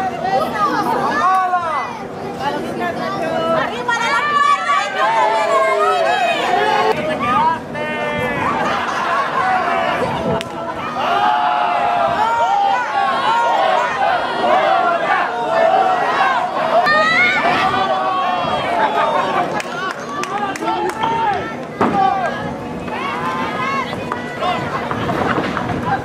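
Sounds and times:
crowd shouting: 3.7s - 26.0s.

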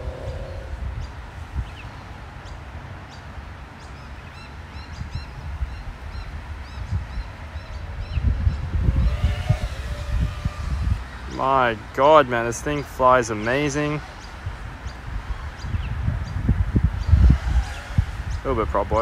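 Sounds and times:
bird chirping: 0.0s - 11.4s
wind rumbling on microphone: 0.0s - 19.0s.

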